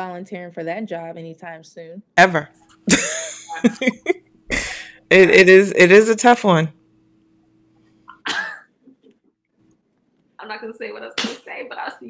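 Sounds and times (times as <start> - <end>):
woman clearing her throat: 8.1 - 8.6.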